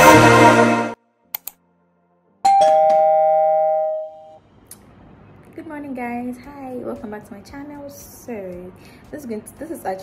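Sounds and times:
click: 0:01.3 - 0:01.6
two-note chime: 0:02.5 - 0:04.4.

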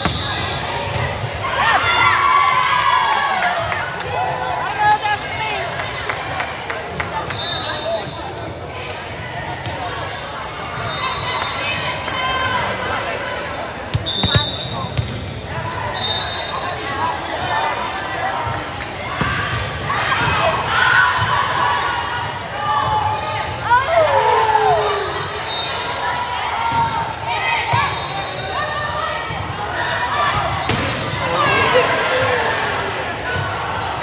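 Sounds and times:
sneakers squeaking: 0:00.0 - 0:01.5, 0:06.9 - 0:20.3, 0:27.6 - 0:32.4
echoing chatter: 0:00.0 - 0:34.0.

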